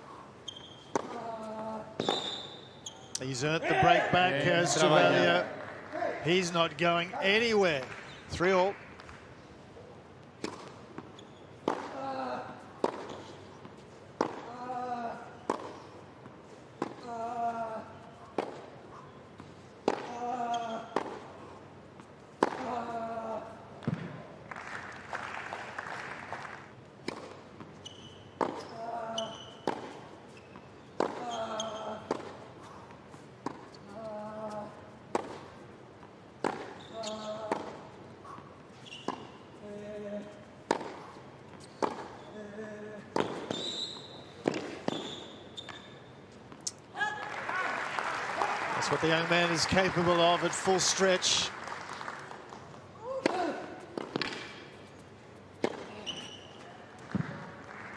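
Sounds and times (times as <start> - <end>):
racket striking tennis ball: 0.9 - 1.2, 10.4 - 12.0, 12.8 - 13.2, 14.2 - 14.5, 36.4 - 36.8, 40.7 - 41.1, 41.8 - 42.1, 43.1 - 43.7, 44.4 - 45.2, 53.2 - 54.7, 55.6 - 56.0.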